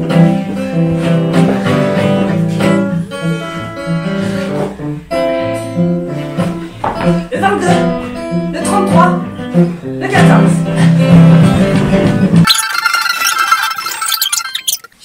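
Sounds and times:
acoustic guitar strumming chords: 0:00.0 - 0:12.4.

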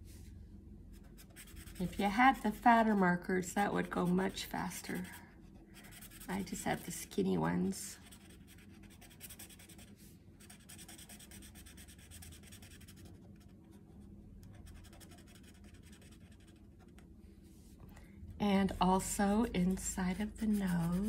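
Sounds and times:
marker scratching on paper: 0:00.9 - 0:03.0, 0:03.8 - 0:05.2, 0:05.8 - 0:06.9, 0:08.0 - 0:13.5, 0:14.5 - 0:17.0, 0:20.1 - 0:21.0.

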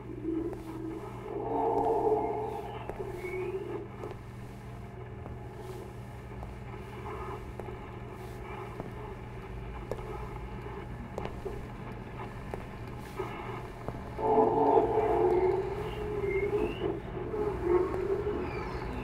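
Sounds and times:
faint tonal sounds: 0:00.0 - 0:12.4, 0:13.0 - 0:19.0
low droning hum: 0:00.0 - 0:19.0
pitched swell: 0:00.2 - 0:03.9, 0:14.2 - 0:19.0.

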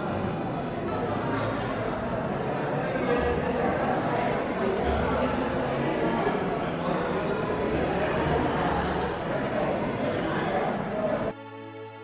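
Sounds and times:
murmur of voices: 0:00.0 - 0:11.4.

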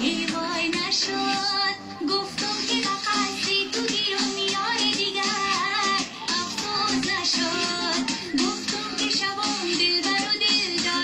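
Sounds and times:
high singing voice: 0:00.0 - 0:11.0.

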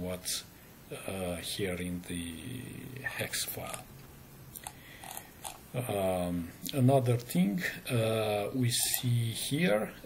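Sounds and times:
man speaking hesitantly: 0:00.0 - 0:03.8, 0:05.8 - 0:10.0.

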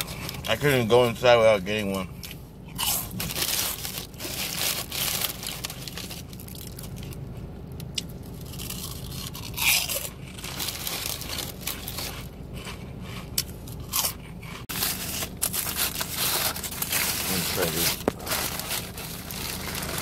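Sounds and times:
person chewing crunchy fries: 0:02.1 - 0:20.0.

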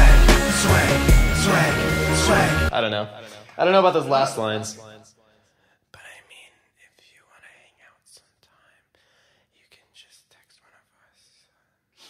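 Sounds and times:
person whispering: 0:05.9 - 0:11.6.

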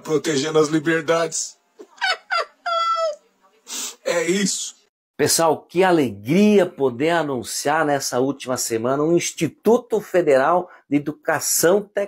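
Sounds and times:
man laughing in falsetto: 0:01.8 - 0:03.2.

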